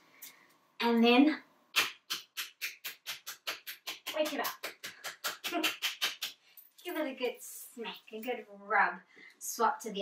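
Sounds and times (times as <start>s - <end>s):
hands slapping bare foot: 1.7s - 6.4s.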